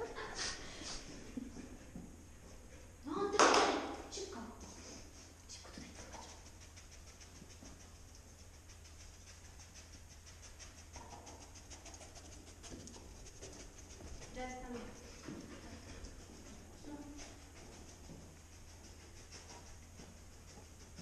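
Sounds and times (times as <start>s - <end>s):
dog sniffing quickly: 4.6s - 21.0s.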